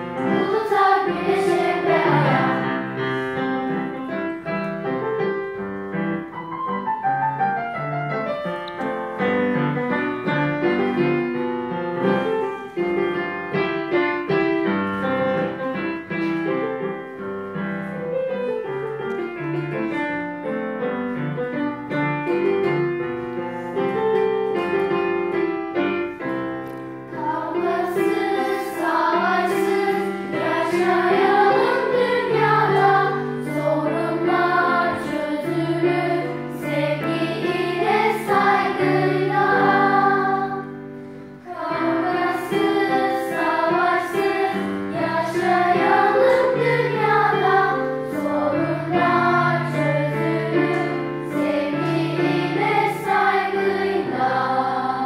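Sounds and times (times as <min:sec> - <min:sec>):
choir singing: 0:00.0 - 0:04.0, 0:27.1 - 0:55.0
keyboard accompaniment: 0:00.0 - 0:55.0.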